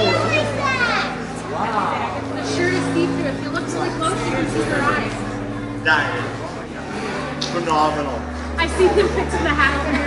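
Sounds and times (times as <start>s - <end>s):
young child's excited voice: 0.0s - 1.2s
steady low hum: 0.0s - 10.0s.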